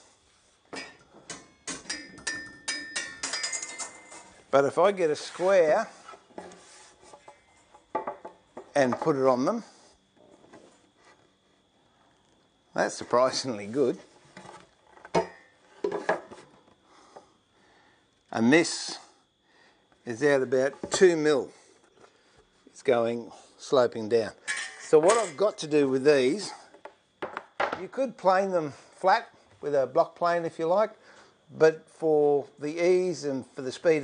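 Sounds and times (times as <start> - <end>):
knocks of wood and metal: 0.7 - 4.4, 7.1 - 9.2, 14.4 - 16.4, 26.8 - 27.8
light metallic clinks: 0.8 - 4.3.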